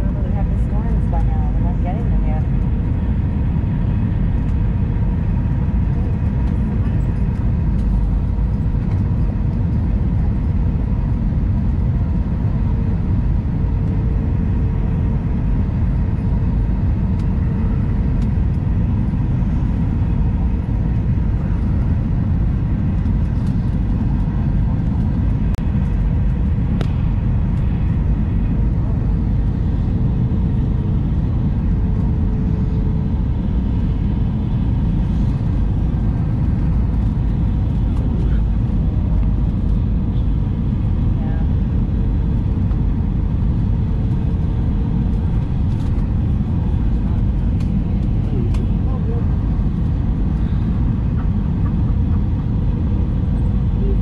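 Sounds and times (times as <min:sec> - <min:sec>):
aircraft cabin engine rumble: 0:00.0 - 0:54.0
faint hum: 0:00.0 - 0:54.0.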